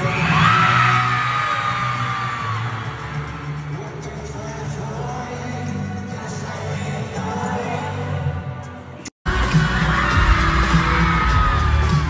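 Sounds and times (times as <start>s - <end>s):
live pop band playing: 2.5s - 12.0s.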